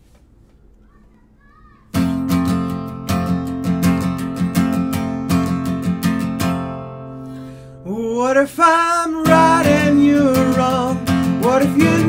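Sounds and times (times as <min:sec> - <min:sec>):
low room noise: 0:00.0 - 0:05.6
distant children's voices: 0:00.4 - 0:03.0
acoustic guitar strummed chord: 0:01.9 - 0:12.0.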